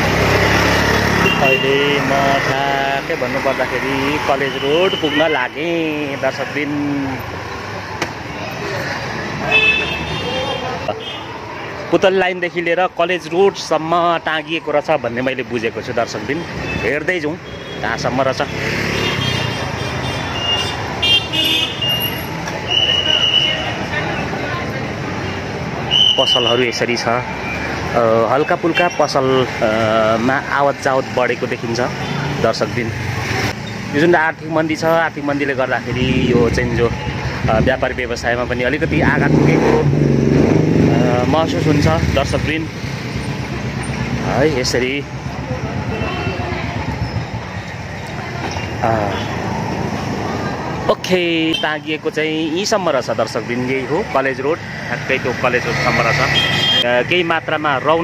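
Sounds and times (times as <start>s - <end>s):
vehicle passing close by: 0.0s - 4.4s, 18.0s - 21.0s, 38.8s - 47.6s
people's voices in street: 0.0s - 58.0s.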